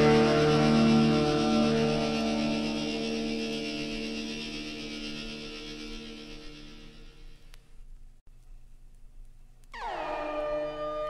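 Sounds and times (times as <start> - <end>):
guitar chord ringing: 0.0 - 6.9.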